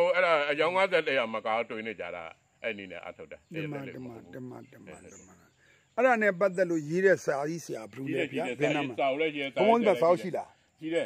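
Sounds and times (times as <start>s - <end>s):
crickets chirping: 0.0s - 11.0s
man speaking: 0.4s - 11.0s.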